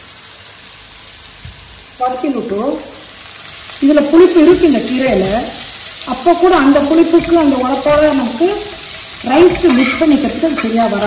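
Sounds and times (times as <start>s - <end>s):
leaves sizzling in hot oil: 0.0s - 11.0s.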